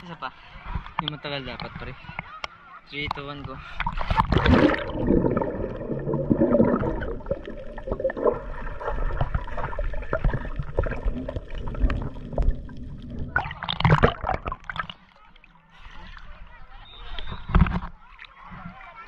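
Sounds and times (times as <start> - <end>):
muffled underwater gurgling: 3.6 - 15.0
water splash: 3.8 - 15.1.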